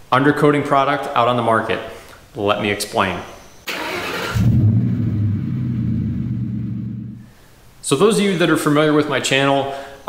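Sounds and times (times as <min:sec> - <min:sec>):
car engine low rumble: 0:04.3 - 0:07.2.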